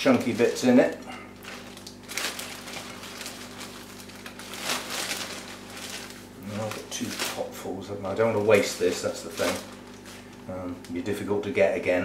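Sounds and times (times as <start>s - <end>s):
plastic bag rustling: 0.0s - 11.6s
faint steady hum: 0.0s - 12.0s.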